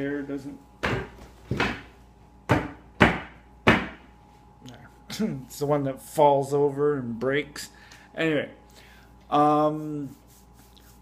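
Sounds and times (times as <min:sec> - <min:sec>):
chair knocking and thudding: 0:00.8 - 0:04.1.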